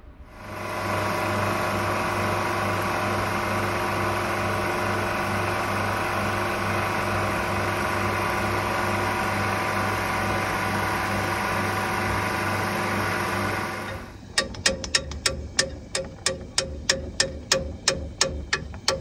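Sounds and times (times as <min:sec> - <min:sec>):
machine droning hum: 0:00.0 - 0:19.0.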